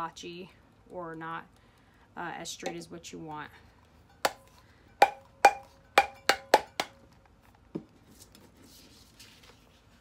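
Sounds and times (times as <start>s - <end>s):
metal tumbler knocking: 4.1s - 7.0s.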